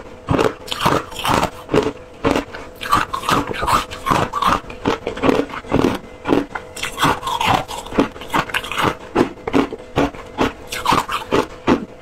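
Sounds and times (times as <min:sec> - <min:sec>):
chewing crunchy ice: 0:00.0 - 0:12.0.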